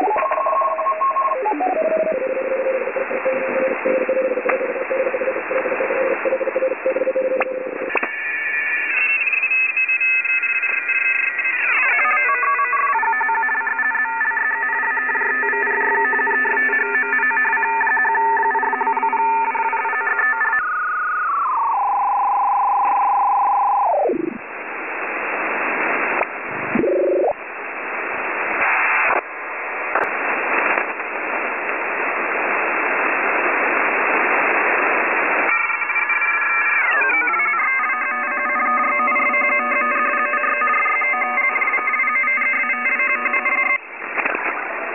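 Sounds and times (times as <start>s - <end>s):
electronic tones with pitch glides: 0.0s - 24.4s, 26.2s - 27.4s, 35.4s - 43.8s
radio static hiss: 0.0s - 44.9s.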